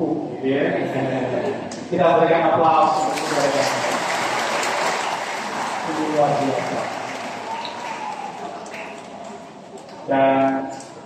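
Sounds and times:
congregation applauding: 2.9 - 10.1.

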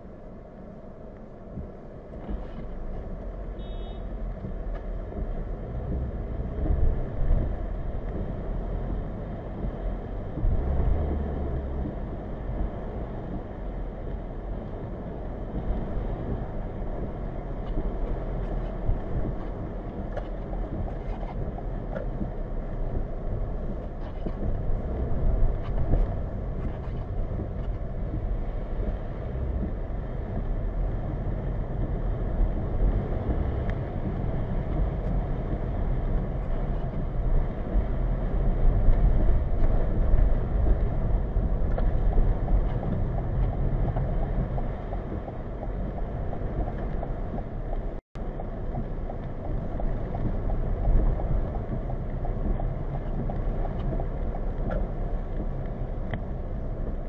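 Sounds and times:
road and tyre noise in car cabin: 0.0 - 57.0.

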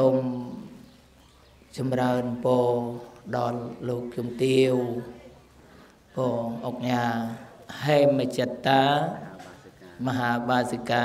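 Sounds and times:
monk chanting into a microphone: 0.0 - 0.8, 1.7 - 5.2, 6.1 - 11.0.

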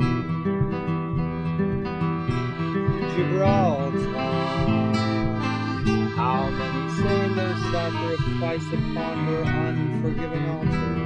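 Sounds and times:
accordion sustained chords: 0.0 - 11.0
classical guitar strummed: 0.0 - 11.0.

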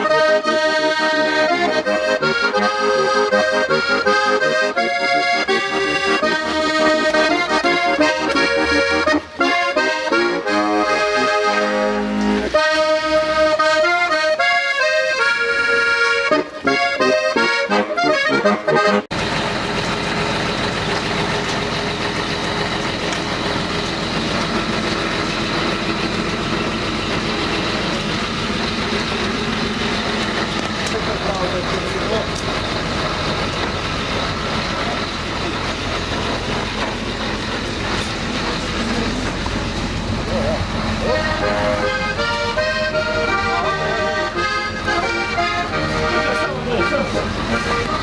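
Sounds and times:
diesel engine running: 0.0 - 48.0
people's voices: 26.0 - 48.0.

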